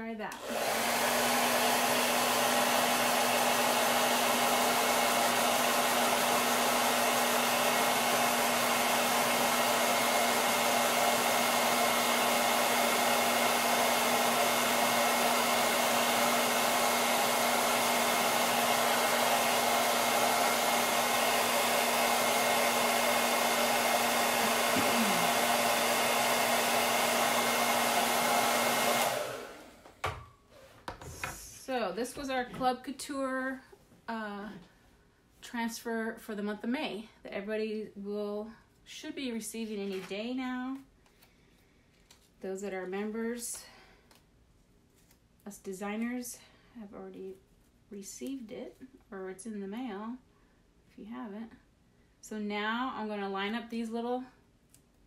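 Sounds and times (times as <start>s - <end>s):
hair dryer blowing: 0.2s - 30.3s, 31.0s - 32.7s.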